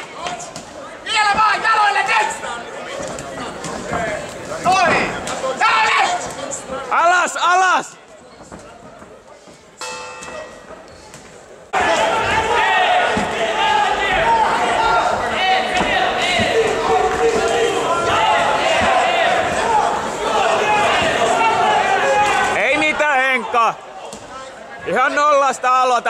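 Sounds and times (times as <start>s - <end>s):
many voices echoing in a hall: 0.0s - 26.0s.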